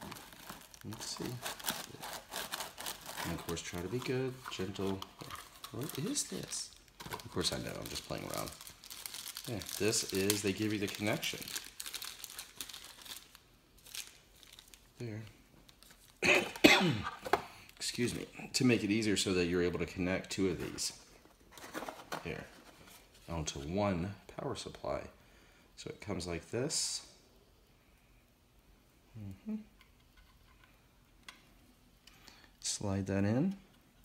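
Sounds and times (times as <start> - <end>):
plastic bag crinkling: 0.0 - 16.2
person saying mm-hmm: 29.1 - 29.8.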